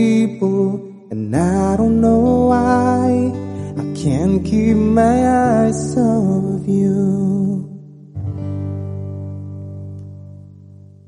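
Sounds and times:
man singing long held notes: 0.0 - 7.8
strummed acoustic guitar: 0.0 - 11.0.

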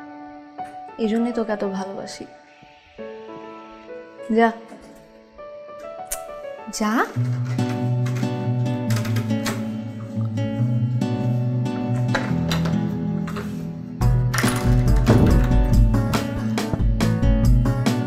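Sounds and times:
sustained bass notes: 14.0 - 17.8
deep pulsing bass beat: 14.8 - 17.8.

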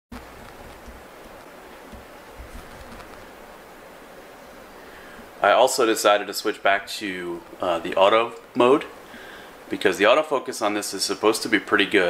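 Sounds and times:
room noise hiss: 0.1 - 12.0.

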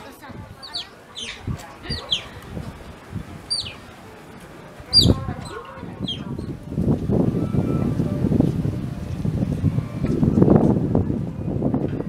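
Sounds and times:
otters chirping: 0.6 - 2.4, 3.4 - 3.9, 4.9 - 6.6.

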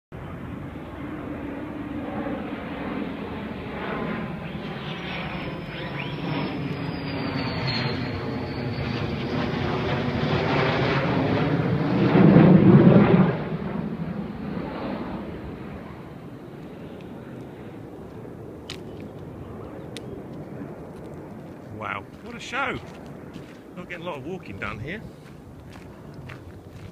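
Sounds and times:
fighter jet flypast: 0.1 - 26.9.

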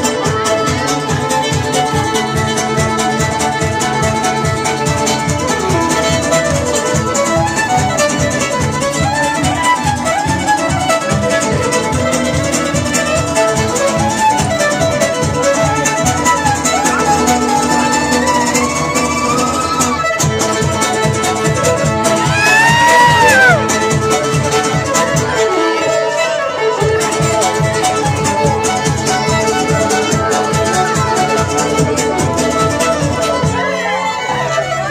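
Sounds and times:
fiddle melody: 0.0 - 34.9.

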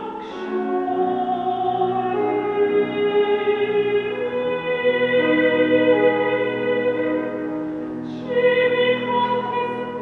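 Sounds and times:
operatic soprano singing: 0.0 - 10.0.

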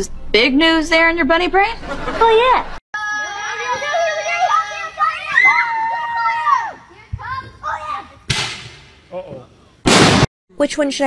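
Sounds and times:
children squealing and shouting: 3.0 - 8.2
sharp whack: 8.3 - 8.9, 9.9 - 10.3.

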